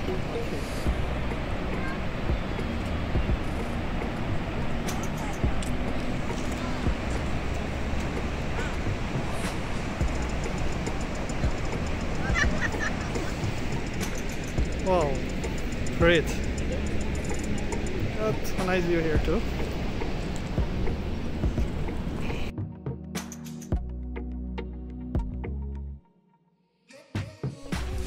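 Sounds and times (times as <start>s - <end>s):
waterfall roaring: 0.0s - 22.5s
faint background music: 0.0s - 23.7s.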